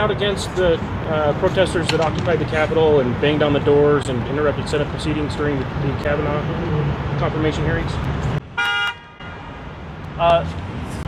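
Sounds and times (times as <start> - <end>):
low street traffic: 0.0 - 11.0
car horn toot: 8.6 - 9.5.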